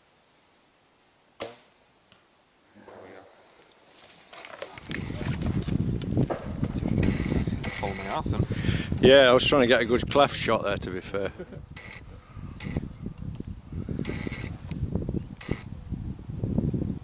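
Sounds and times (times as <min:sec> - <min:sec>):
bow string snap: 0:01.4 - 0:02.3.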